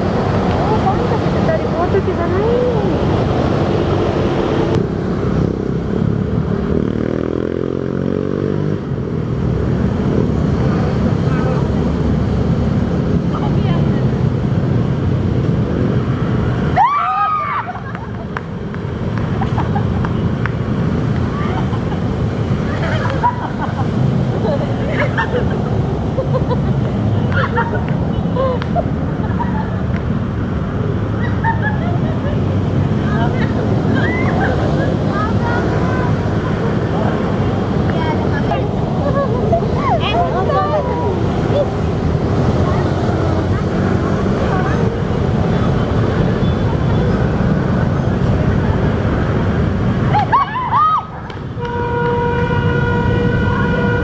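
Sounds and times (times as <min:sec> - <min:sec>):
faint voices of passers-by: 0:00.0 - 0:54.0
people laughing: 0:17.3 - 0:18.5, 0:19.2 - 0:20.3, 0:21.3 - 0:29.9, 0:31.1 - 0:37.2, 0:38.4 - 0:41.8, 0:50.0 - 0:51.3.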